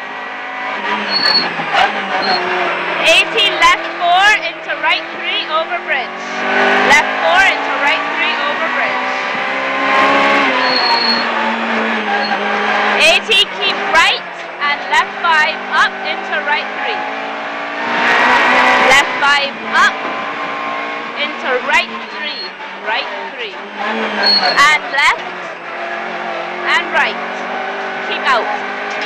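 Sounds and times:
rally car engine revving: 0.0 - 29.0
tyre squeal: 0.8 - 2.7, 9.8 - 13.1, 21.8 - 26.4.

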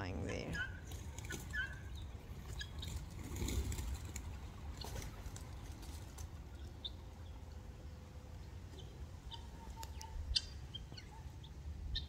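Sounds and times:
guineafowl calls: 0.4 - 3.0, 8.8 - 12.0.

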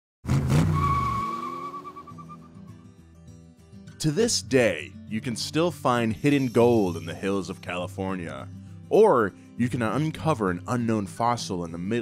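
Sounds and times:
car engine bursting in: 0.2 - 2.5
tyre screech: 0.3 - 2.5.

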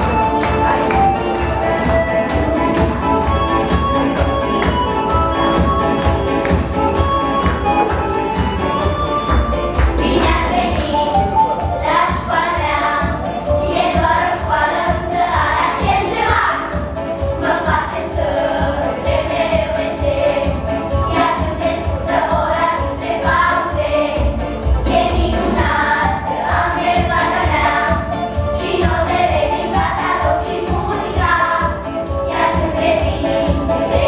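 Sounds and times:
accompanying music with beat: 0.0 - 34.0
girls singing together: 9.9 - 34.0.

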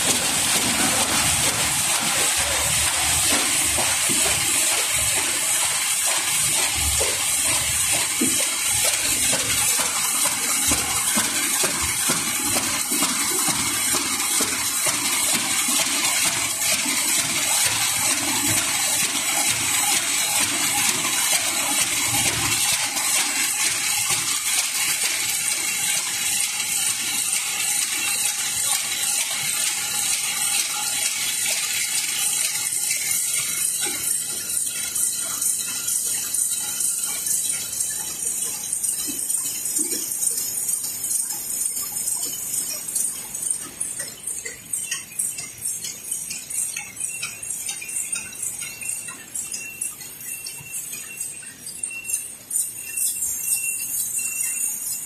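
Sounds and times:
machine hissing and clattering: 0.0 - 55.0.

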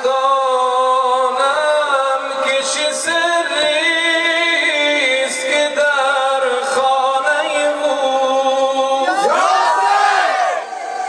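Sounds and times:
crowd shouting together: 9.0 - 11.0.

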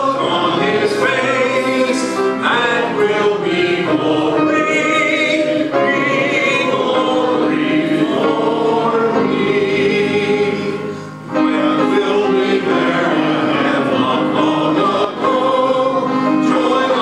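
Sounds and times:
congregation singing a hymn: 0.0 - 17.0.

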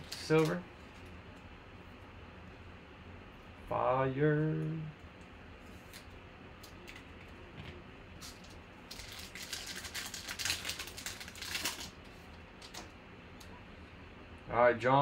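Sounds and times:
foil wrapper crinkling and tearing: 0.0 - 0.6, 8.2 - 12.0.

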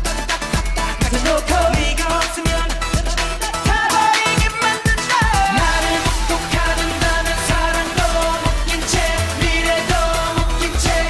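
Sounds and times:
electronic dance-pop backing track: 0.0 - 11.0
group singing: 0.1 - 11.0.

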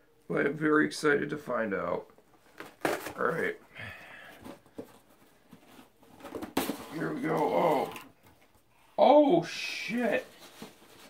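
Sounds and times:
cardboard box rustling: 4.4 - 7.8, 10.0 - 11.0.

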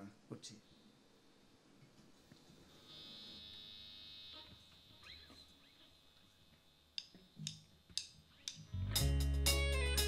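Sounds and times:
faint high electric buzz: 2.1 - 8.8.

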